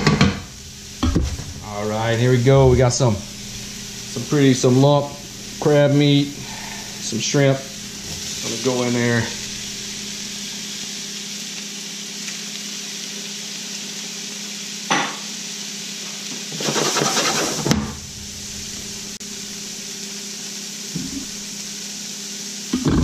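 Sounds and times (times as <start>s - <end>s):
steady low hum: 0.0s - 11.2s, 17.8s - 20.1s
seafood sizzling in a pan: 0.0s - 23.0s.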